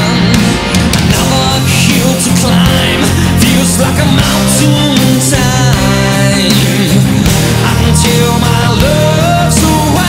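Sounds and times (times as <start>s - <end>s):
hard rock song with full band: 0.0s - 10.0s.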